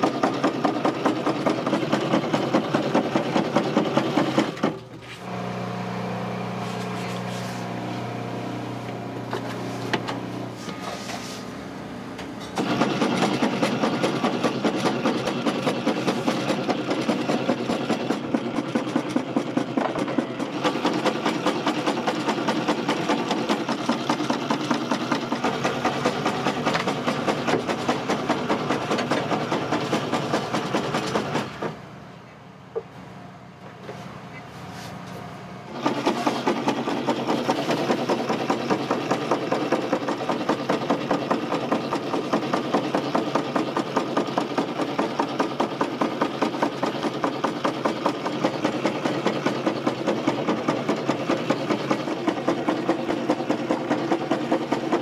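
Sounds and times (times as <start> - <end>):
noodle-cutting machine clattering: 0.0 - 5.2, 12.5 - 31.8, 35.7 - 55.0.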